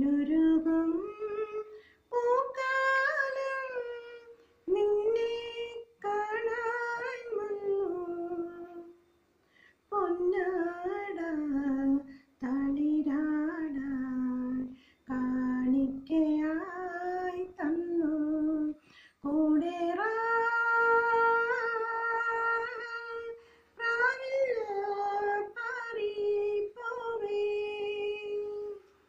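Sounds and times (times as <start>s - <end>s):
woman breathing: 1.7s - 2.1s, 9.3s - 9.9s, 14.7s - 15.1s, 18.8s - 19.2s, 23.4s - 23.8s.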